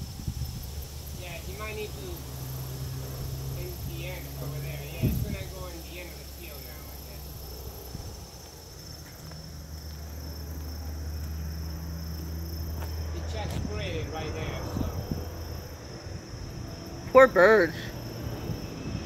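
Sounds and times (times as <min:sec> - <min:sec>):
crickets chirring: 0:00.0 - 0:19.0
distant airplane engine drone: 0:00.0 - 0:19.0.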